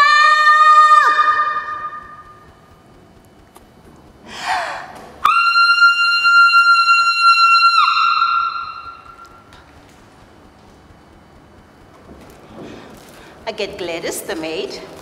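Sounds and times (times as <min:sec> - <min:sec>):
breathy intake: 0:04.3 - 0:05.0
woman singing high held note: 0:05.2 - 0:09.5.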